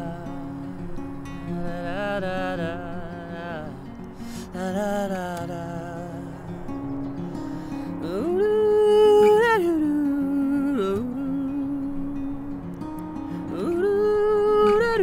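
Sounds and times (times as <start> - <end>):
acoustic guitar playing: 0.0 - 15.0.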